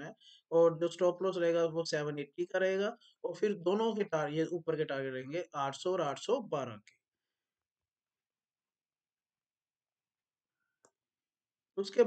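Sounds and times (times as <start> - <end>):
man speaking: 0.0 - 6.9, 11.8 - 12.0.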